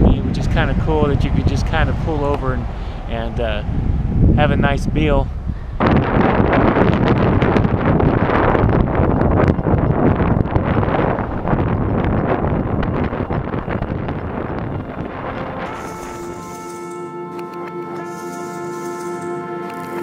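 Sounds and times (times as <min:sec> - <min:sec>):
wind buffeting microphone: 0:00.0 - 0:17.0
road noise: 0:00.0 - 0:20.0
ambient music with held tones: 0:14.7 - 0:20.0.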